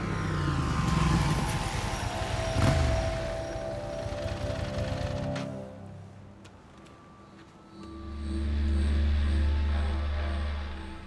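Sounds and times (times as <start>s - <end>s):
motorcycle engine revving: 0.0s - 5.7s.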